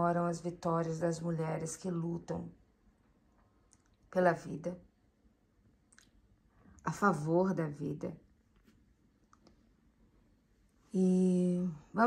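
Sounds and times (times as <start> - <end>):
woman's voice: 0.0 - 2.6, 4.2 - 4.8, 6.8 - 8.2, 10.9 - 12.0.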